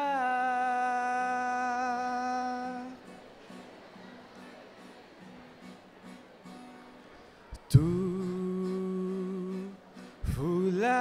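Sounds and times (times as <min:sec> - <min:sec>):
man singing a long note: 0:00.0 - 0:03.0, 0:07.7 - 0:11.0.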